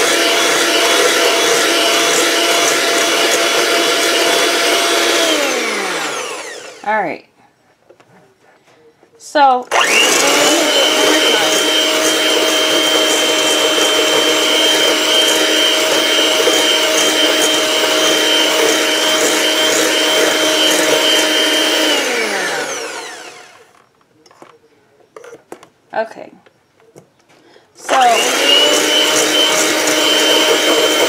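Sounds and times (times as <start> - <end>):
electric hand mixer whining: 0.0 - 6.9, 9.7 - 23.8, 27.8 - 31.0.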